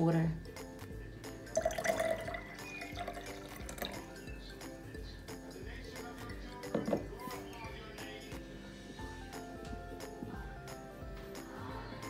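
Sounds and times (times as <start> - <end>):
background music: 0.0 - 12.0
liquid pouring into a glass: 1.4 - 4.5.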